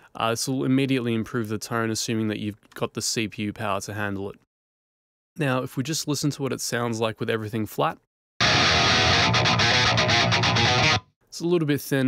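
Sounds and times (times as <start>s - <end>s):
distorted electric guitar riff: 8.4s - 11.0s.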